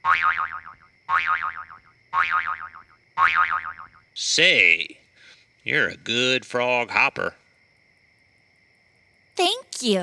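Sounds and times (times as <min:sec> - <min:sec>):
cartoon boing sound effect: 0:00.0 - 0:03.9.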